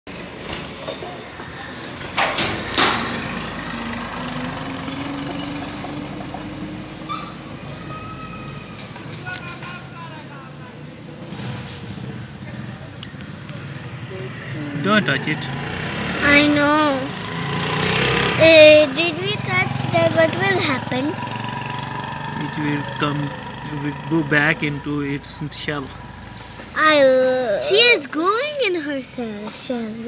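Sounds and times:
traffic hum: 0:00.1 - 0:30.0
vehicle engine rising in pitch: 0:01.4 - 0:09.2, 0:11.1 - 0:26.9.

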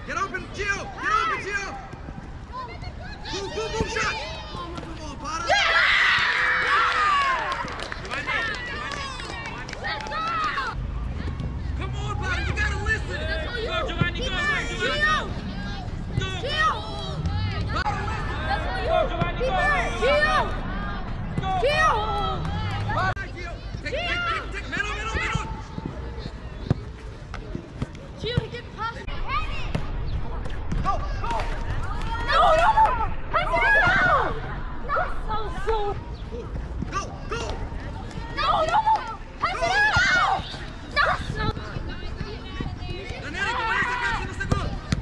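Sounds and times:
young players shouting: 0:00.3 - 0:01.8, 0:02.5 - 0:10.8, 0:11.9 - 0:25.7, 0:30.8 - 0:36.0, 0:36.9 - 0:44.9
children shouting: 0:31.9 - 0:35.2, 0:38.3 - 0:41.5.

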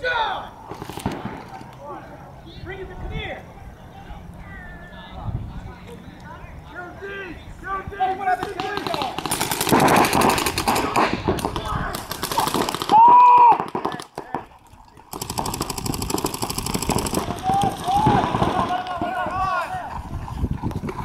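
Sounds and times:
players shouting: 0:00.0 - 0:00.7, 0:11.6 - 0:14.2, 0:16.9 - 0:20.0
paintball markers firing: 0:08.4 - 0:14.5, 0:15.1 - 0:19.2
loud yell: 0:12.9 - 0:13.6, 0:17.2 - 0:19.9.

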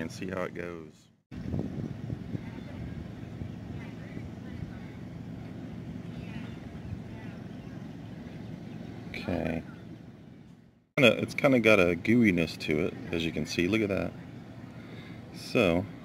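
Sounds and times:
low outdoor rumble: 0:00.0 - 0:16.0
faint distant voices: 0:01.4 - 0:16.0.

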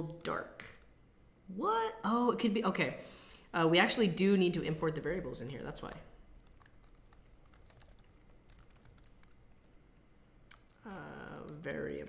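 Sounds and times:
mechanical keyboard typing: 0:06.4 - 0:09.8, 0:10.5 - 0:12.0.

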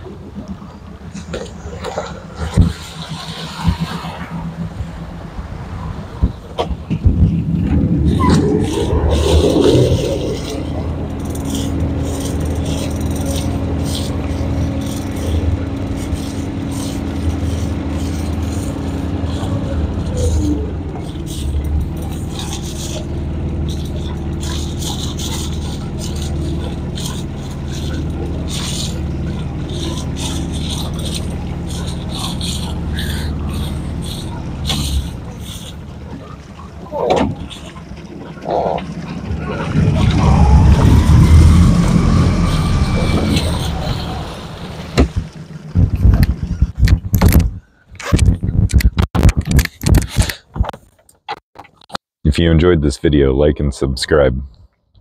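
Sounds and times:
small boat motor running: 0:07.4 - 0:46.9
scattered clicks: 0:46.0 - 0:52.0.

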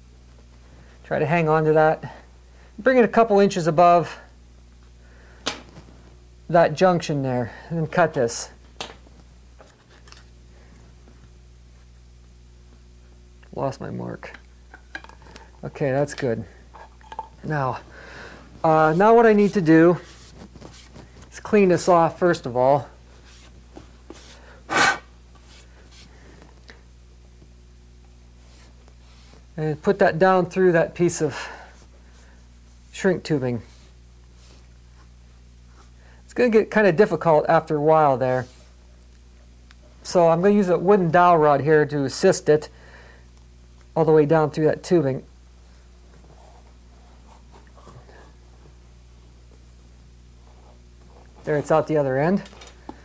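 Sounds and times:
steady low hum: 0:00.0 - 0:53.0
wire rustling through tubing: 0:14.7 - 0:21.5.

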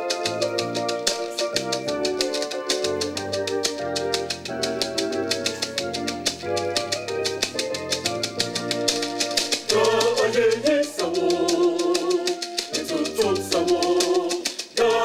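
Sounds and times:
gourd rattle shaking: 0:00.0 - 0:15.0
choir singing chords: 0:09.5 - 0:15.0.

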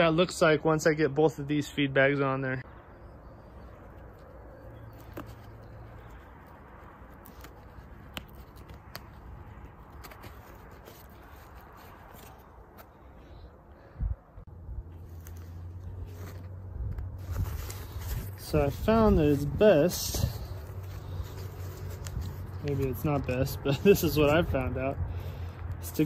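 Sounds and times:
fabric bag rustling: 0:14.9 - 0:24.4.

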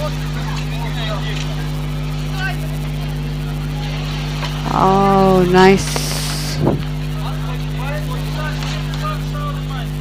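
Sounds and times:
faint voices: 0:00.0 - 0:10.0
steady low hum: 0:00.0 - 0:10.0.

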